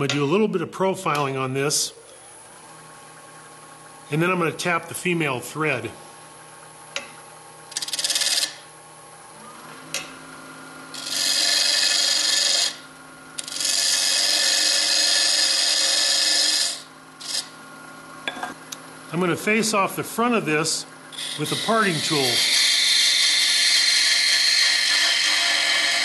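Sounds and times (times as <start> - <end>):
lathe running hum: 1.1 - 26.0
gouge cutting wood on lathe: 7.7 - 8.6, 10.9 - 12.8, 13.4 - 17.6, 21.1 - 26.0.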